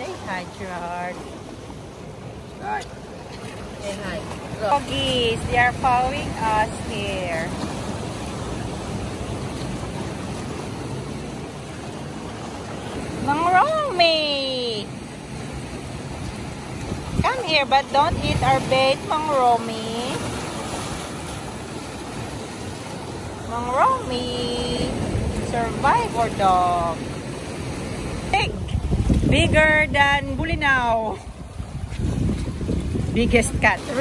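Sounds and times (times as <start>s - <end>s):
sea water washing against rocks: 0.0s - 34.0s
surf rushing among boulders: 0.0s - 34.0s
wind buffeting microphone: 16.0s - 34.0s.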